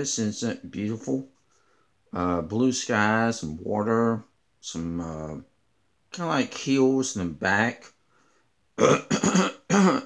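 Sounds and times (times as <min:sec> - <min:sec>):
man coughing: 0:08.8 - 0:10.0.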